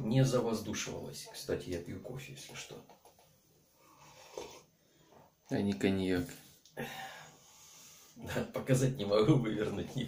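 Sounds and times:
man breathing: 6.8s - 8.2s.

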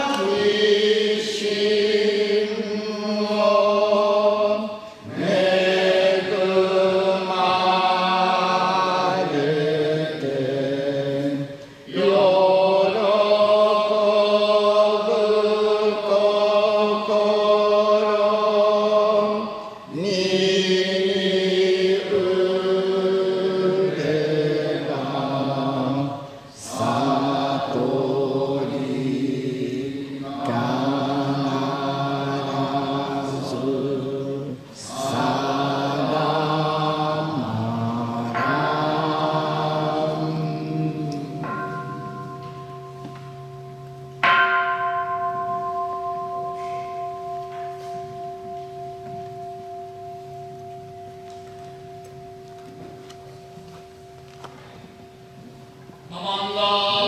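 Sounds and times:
bronze bowl bell ringing: 38.2s - 56.6s
man chanting: 56.1s - 57.0s.

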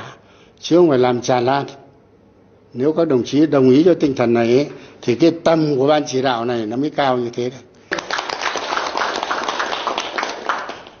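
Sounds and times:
audience clapping: 7.9s - 11.0s.

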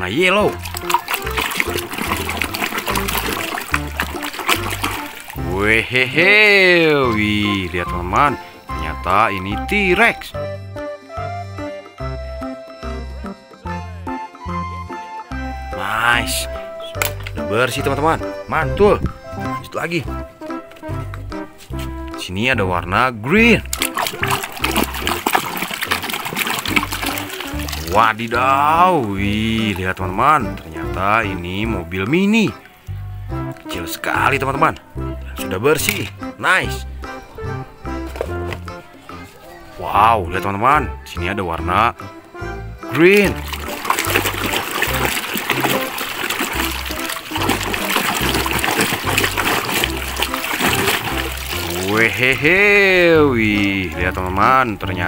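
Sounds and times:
water splashing in a tub: 0.0s - 9.8s, 23.4s - 32.9s, 43.0s - 55.0s
background music with bass: 0.0s - 55.0s.

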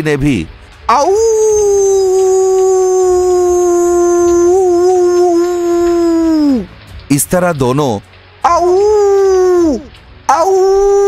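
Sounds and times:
cartoon fox howling: 0.9s - 6.7s, 8.4s - 11.0s.

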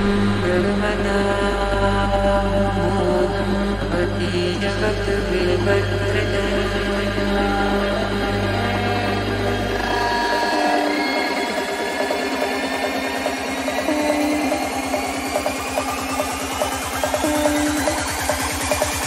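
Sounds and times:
deep bass: 0.0s - 19.0s
rising synth sweep: 0.0s - 19.0s
fast ticking pulse: 4.5s - 19.0s.

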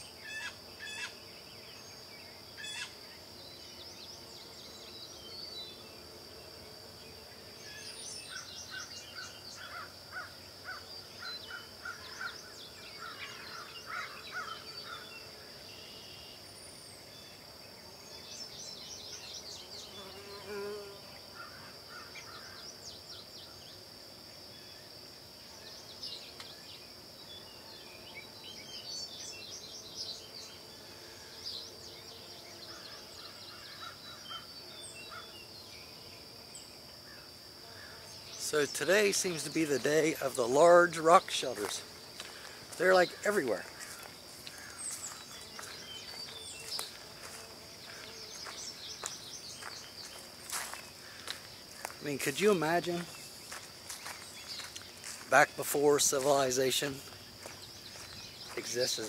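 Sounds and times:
high-pitched insect drone: 1.9s - 17.4s, 27.2s - 59.0s
chirping calls: 42.4s - 59.0s.

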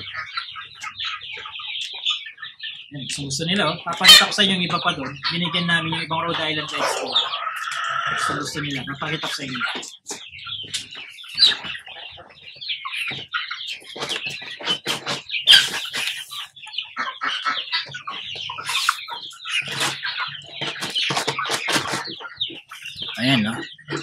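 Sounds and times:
hens clucking and calling: 0.0s - 24.0s.

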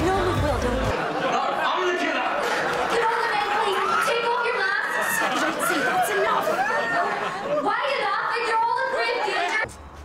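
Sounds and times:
excited chatter of voices: 0.2s - 9.7s.

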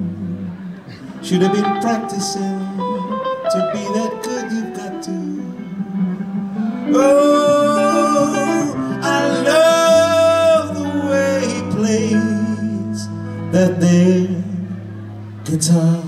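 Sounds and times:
bass line: 0.0s - 16.0s
electric guitars playing: 0.0s - 16.0s
man singing: 1.1s - 5.8s, 6.8s - 16.0s.

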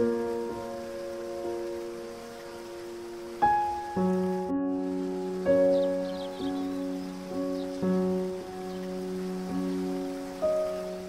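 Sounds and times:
slow solo piano: 0.0s - 11.0s.

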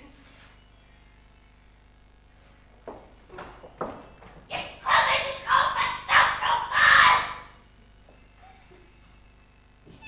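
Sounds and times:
person shouting loudly: 4.6s - 7.5s.

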